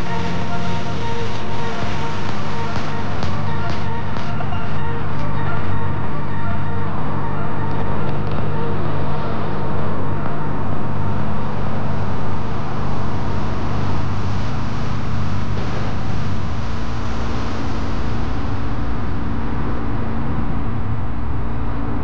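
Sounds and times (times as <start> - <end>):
car engine and tyre noise: 0.0 - 22.0.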